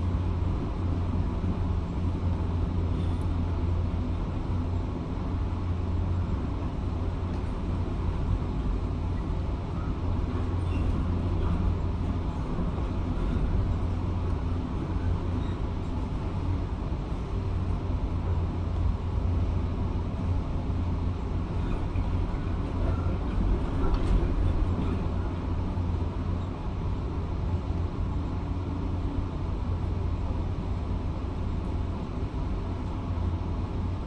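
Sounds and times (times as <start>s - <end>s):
excavator engine low rumble: 0.0s - 34.0s.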